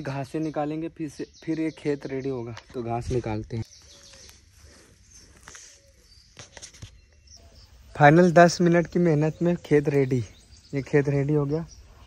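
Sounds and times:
dry grass and soil rustling: 2.0 - 8.1.

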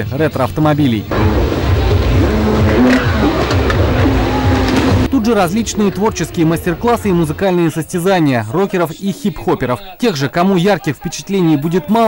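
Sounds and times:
jet ski engine revving: 1.1 - 7.2.

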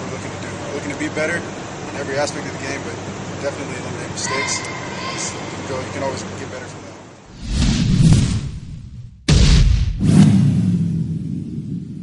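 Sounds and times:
low rumble: 7.3 - 12.0
whooshing hit: 7.3 - 12.0.

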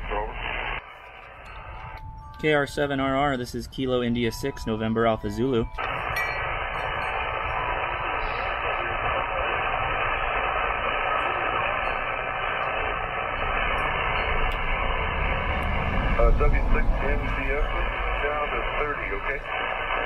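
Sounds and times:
radio static hiss: 0.0 - 2.0, 5.8 - 20.0.

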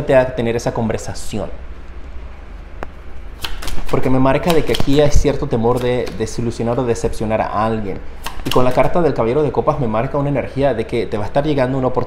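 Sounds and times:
low steady hum: 0.0 - 12.0
cards flicking: 3.3 - 6.6, 8.2 - 9.0
cards clicking on wooden table: 3.4 - 6.4.

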